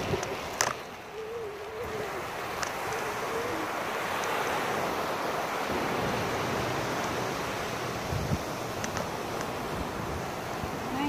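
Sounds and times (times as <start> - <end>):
ocean waves breaking: 0.0 - 11.0.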